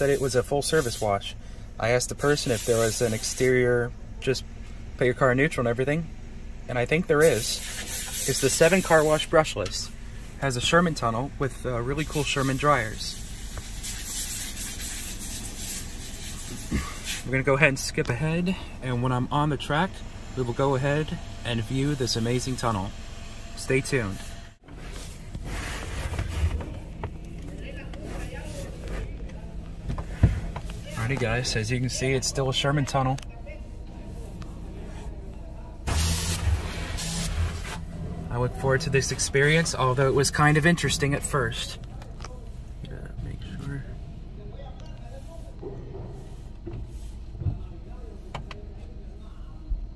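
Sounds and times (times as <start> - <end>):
water spray hissing on car: 0.0 - 1.3, 2.0 - 3.6, 7.2 - 9.4, 12.0 - 17.6, 35.9 - 37.9
car cabin hiss and rumble: 0.0 - 49.2.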